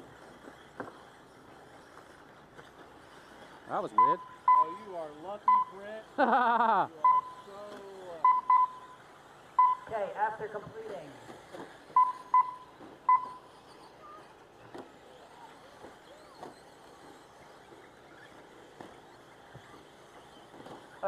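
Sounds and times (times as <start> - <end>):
toy trucks running on dirt: 0.0 - 21.0
short electronic beeps: 3.9 - 4.8, 5.4 - 5.9, 7.0 - 7.6, 8.2 - 9.0, 9.6 - 9.9, 11.9 - 14.2.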